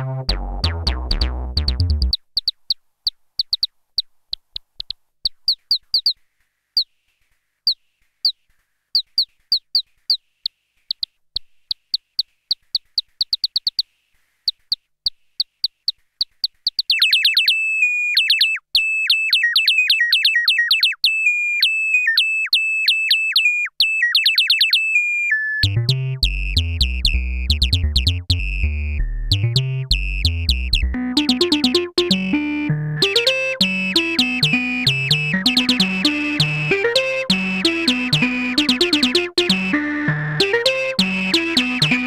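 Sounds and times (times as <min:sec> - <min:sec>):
synthesizer falling chirp blips: 0:00.0 - 0:02.2, 0:25.4 - 0:42.0
rapid synthesizer stabs: 0:25.6 - 0:42.0
synthesizer steady high tone: 0:30.4 - 0:42.0.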